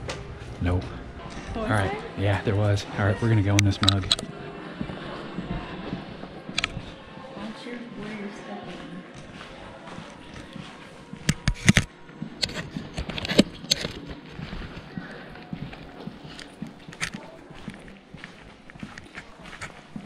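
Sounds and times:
footsteps on hard floor: 0:03.8 - 0:20.0.

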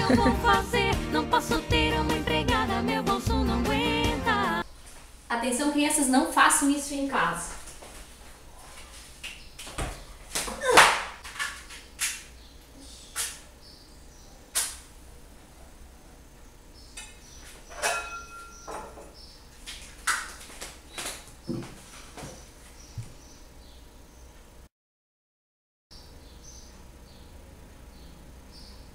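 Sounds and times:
pots and pans knocking: 0:17.8 - 0:19.1.

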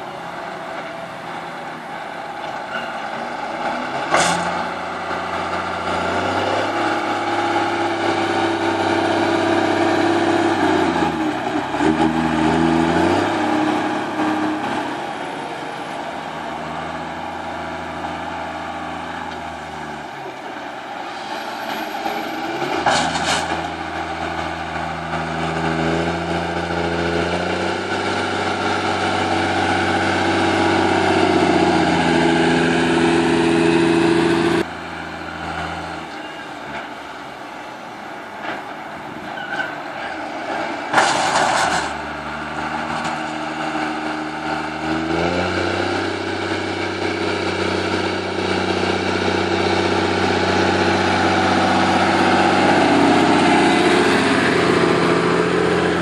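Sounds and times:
tractor diesel engine: 0:00.0 - 0:56.0.

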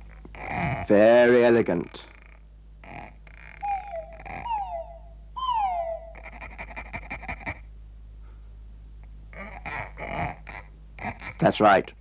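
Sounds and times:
cartoon frog croaking chatter: 0:01.8 - 0:07.7, 0:09.3 - 0:11.6
falling whistle calls: 0:03.6 - 0:06.3.

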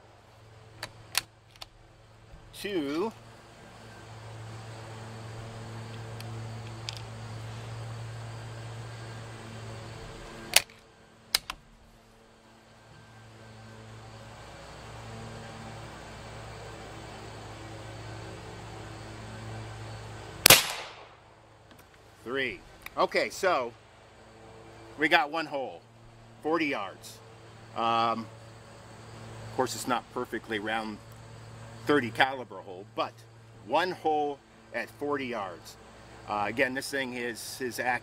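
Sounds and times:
low hum: 0:00.0 - 0:38.0
sharp clicks: 0:00.8 - 0:01.8, 0:10.5 - 0:11.6, 0:20.5 - 0:21.1
air rifle shot: 0:20.4 - 0:21.2.

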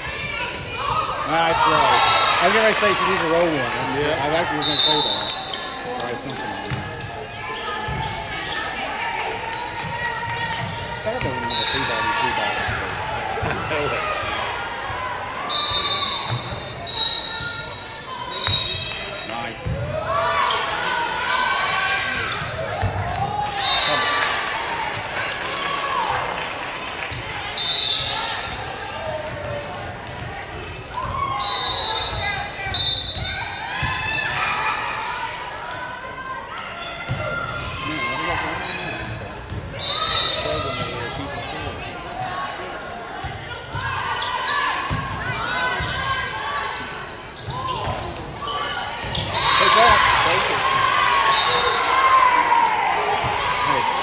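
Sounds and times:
shoe squeaks on court: 0:15.7 - 0:20.7, 0:45.8 - 0:50.0.

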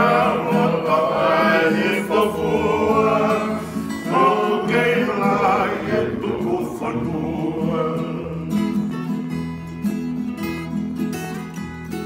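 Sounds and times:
men singing in harmony: 0:00.0 - 0:08.8
strummed acoustic guitars: 0:00.0 - 0:12.0.

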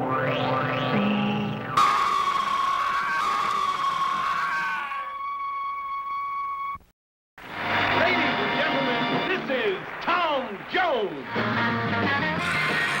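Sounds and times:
music: 0:00.0 - 0:06.8, 0:07.5 - 0:09.8, 0:11.2 - 0:13.0
shrill scream-like cry: 0:01.8 - 0:05.6, 0:12.4 - 0:13.0
noise: 0:05.8 - 0:13.0.

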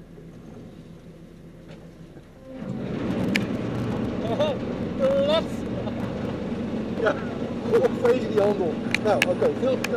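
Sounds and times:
low engine rumble: 0:00.0 - 0:09.9.

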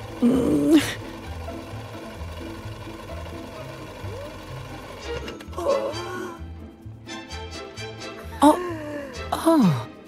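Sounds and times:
sewing machine stitching: 0:00.0 - 0:05.6
background music: 0:00.0 - 0:10.0.

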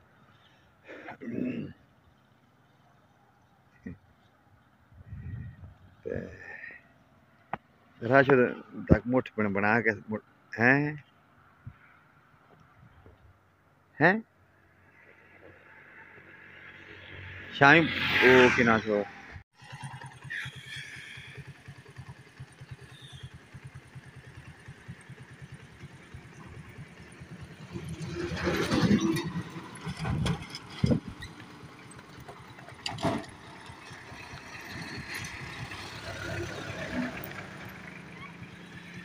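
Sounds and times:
vehicle passing: 0:14.6 - 0:21.8, 0:23.6 - 0:30.8, 0:33.3 - 0:39.0
small engine puttering: 0:19.6 - 0:39.0.

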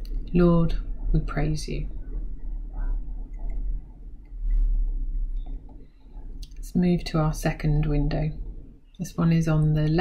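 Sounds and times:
low room hum and rumble: 0:00.0 - 0:10.0.

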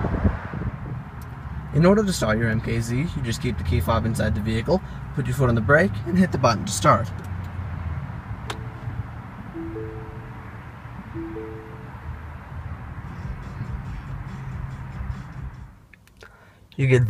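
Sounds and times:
two-note dashboard chime: 0:09.6 - 0:12.3.

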